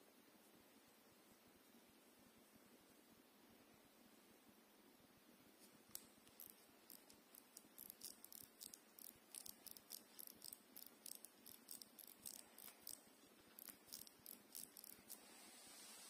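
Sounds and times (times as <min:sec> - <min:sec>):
watch crown clicking: 0:05.9 - 0:15.2.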